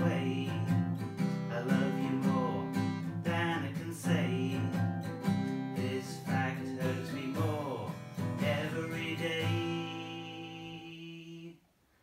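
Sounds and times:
acoustic guitar: 0.0s - 11.6s
man singing held note: 8.6s - 11.6s.

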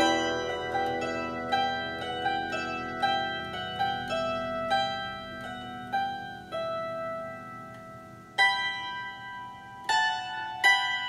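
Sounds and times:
plucked string duet: 0.0s - 11.0s.

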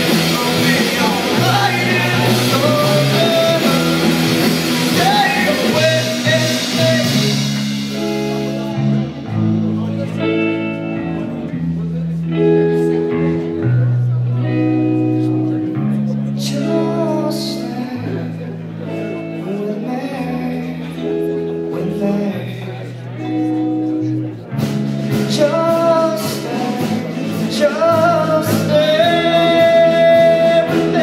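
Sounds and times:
held guitar chords: 0.0s - 31.0s
live rock band playing: 0.0s - 31.0s.

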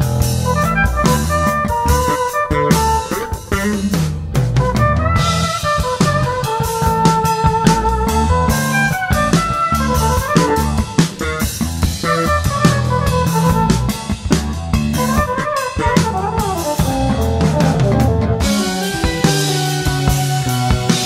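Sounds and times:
drum kit: 0.0s - 21.0s
electric bass: 0.0s - 21.0s
electric guitar lead line: 0.0s - 21.0s.

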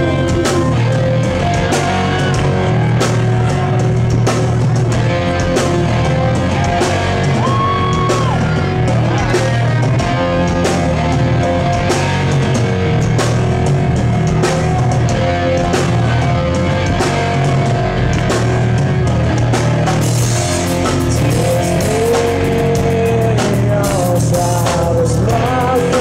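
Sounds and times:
drum kit beat: 0.0s - 26.0s
electric guitars: 0.0s - 26.0s.

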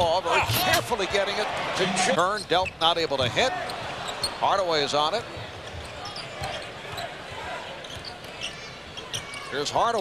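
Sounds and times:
faint arena voices: 0.0s - 10.0s.

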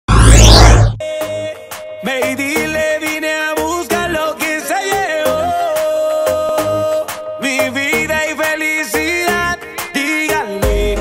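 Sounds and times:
whooshing transition effect: 0.0s - 1.0s.

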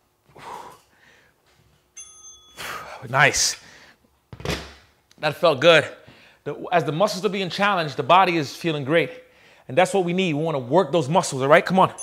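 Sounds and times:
bright metallic ding: 2.0s - 2.8s.

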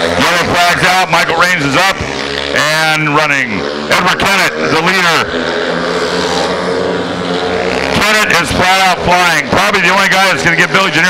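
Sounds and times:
motorcycle engine running flat out: 0.0s - 11.0s.

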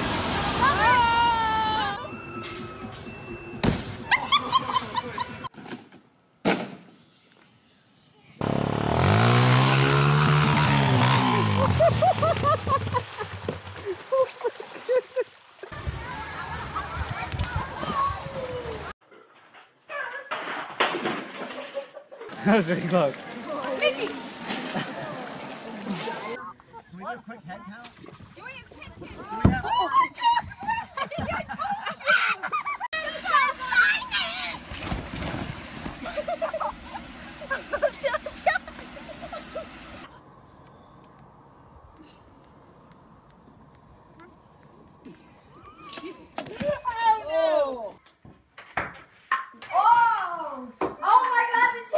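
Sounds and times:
pool water noise: 0.0s - 5.4s, 10.1s - 19.0s, 20.8s - 40.4s
children shouting and squealing: 15.8s - 19.0s, 28.4s - 34.6s, 45.5s - 48.0s.

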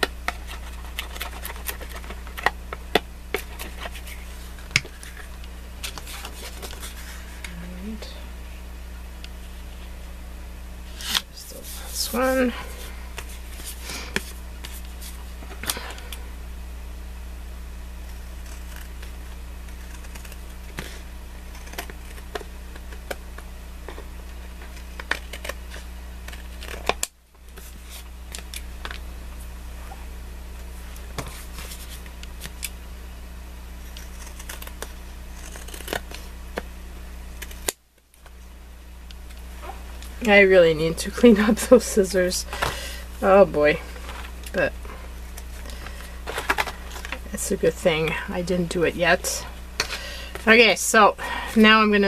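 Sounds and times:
low electrical hum: 0.0s - 52.0s
scissors snipping cardstock: 33.9s - 36.7s.

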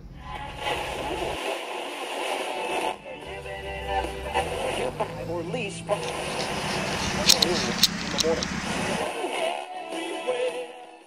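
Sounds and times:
music: 0.1s - 7.6s, 8.2s - 11.0s
low rumble: 3.0s - 9.1s
indistinct voices: 3.0s - 9.6s
sharp clicks: 6.0s - 9.0s.

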